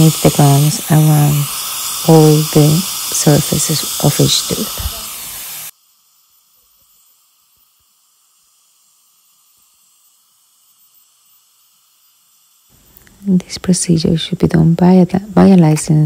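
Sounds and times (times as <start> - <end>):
faint hiss: 0.0 - 14.8
dental scaler water spray hissing: 0.0 - 16.0.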